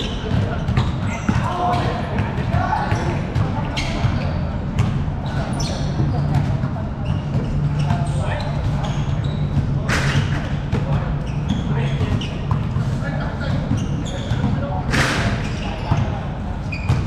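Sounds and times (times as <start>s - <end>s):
basketballs bouncing on court: 0.0s - 17.0s
players' voices: 0.0s - 17.0s
shoe squeaks: 0.0s - 17.0s.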